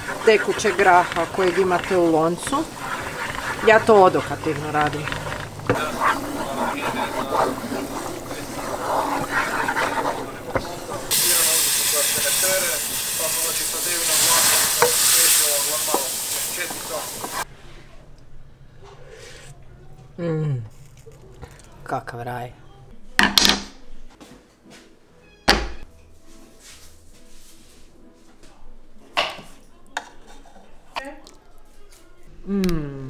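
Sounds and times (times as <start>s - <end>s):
loud hiss of roux poured into pot: 0.0s - 17.5s
roux sizzling in a frying pan: 0.0s - 17.5s
wooden spoon stirring: 0.0s - 17.5s.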